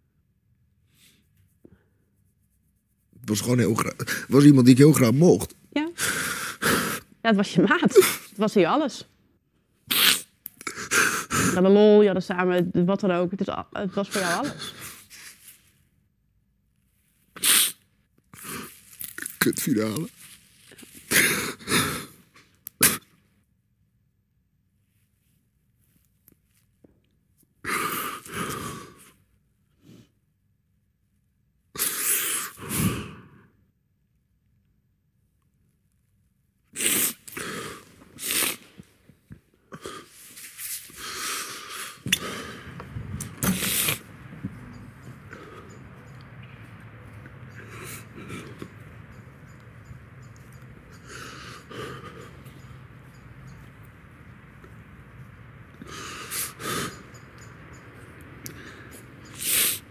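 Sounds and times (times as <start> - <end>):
low background noise: 0.0 - 59.9.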